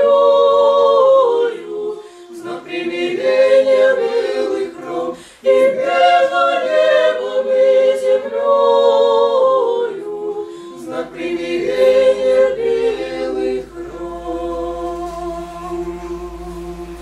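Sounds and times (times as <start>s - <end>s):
choir singing chant a cappella: 0.0s - 17.0s.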